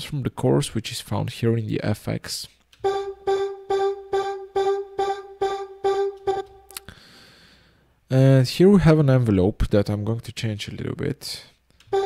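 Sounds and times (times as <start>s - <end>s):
synthesizer vocal notes: 2.8s - 6.8s.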